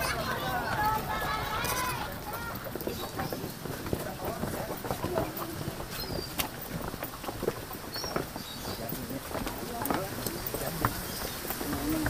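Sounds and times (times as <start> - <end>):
indistinct voices: 0.0 - 7.9
footsteps on stone steps: 0.0 - 12.0.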